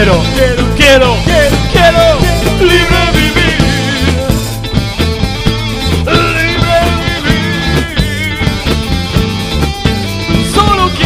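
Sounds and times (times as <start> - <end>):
person singing: 0.0 - 4.6, 6.1 - 8.8, 10.4 - 11.0
live rock band playing: 0.0 - 11.0.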